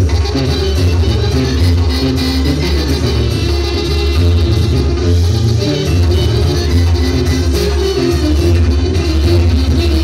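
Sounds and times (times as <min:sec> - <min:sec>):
bass line: 0:00.0 - 0:10.0
live band playing loud music: 0:00.0 - 0:10.0.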